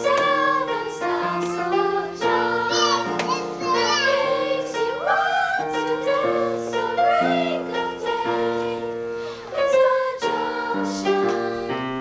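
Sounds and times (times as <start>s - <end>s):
children's choir singing: 0.0s - 12.0s.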